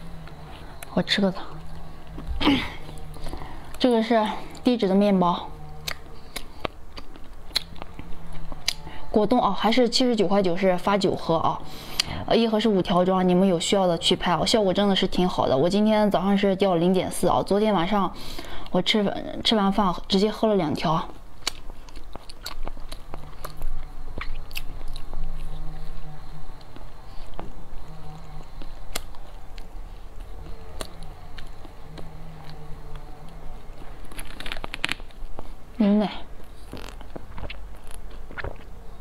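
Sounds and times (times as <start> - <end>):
chewing bread: 5.6 - 8.9, 21.0 - 35.7, 36.3 - 39.0.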